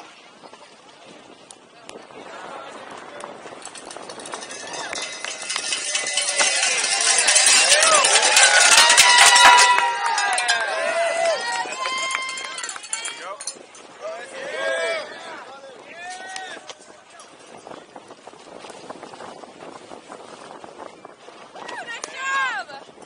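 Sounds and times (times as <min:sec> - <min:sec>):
bike rattling on dirt track: 0:03.5 - 0:10.6
spectators shouting and cheering: 0:03.6 - 0:16.9, 0:21.6 - 0:22.7.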